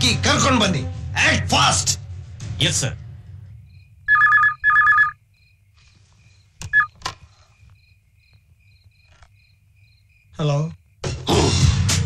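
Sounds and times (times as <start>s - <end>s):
telephone ringing: 4.1s - 5.2s, 6.7s - 7.0s.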